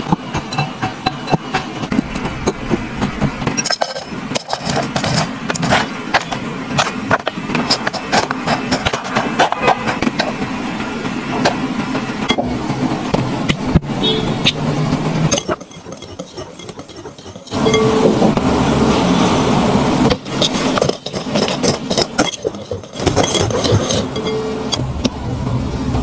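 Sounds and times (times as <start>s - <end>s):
spatula scraping biscuit crumbs: 15.3s - 17.6s, 20.3s - 24.4s.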